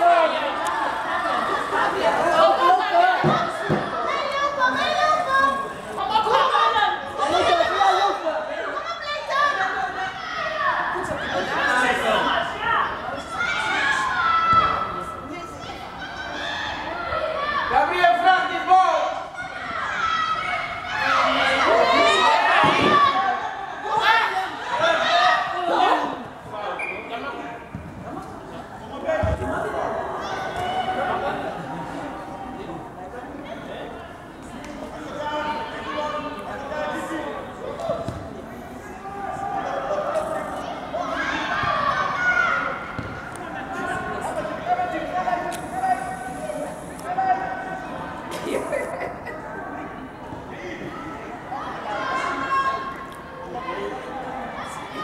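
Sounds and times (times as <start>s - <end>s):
children shouting: 13.1s - 18.1s, 18.9s - 26.2s, 39.0s - 46.3s, 50.8s - 55.0s
football thud: 38.0s - 38.3s, 43.0s - 43.2s.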